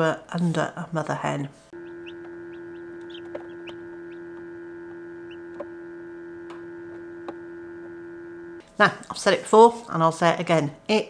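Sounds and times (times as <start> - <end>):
incubator fan hum: 1.2 - 9.2
chicks peeping: 1.8 - 5.7
sharp taps: 1.8 - 5.7.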